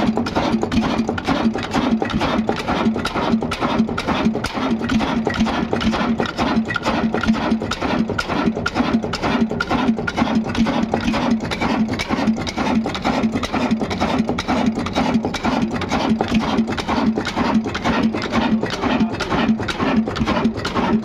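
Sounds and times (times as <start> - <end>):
stationary diesel engine running: 0.0 - 21.0.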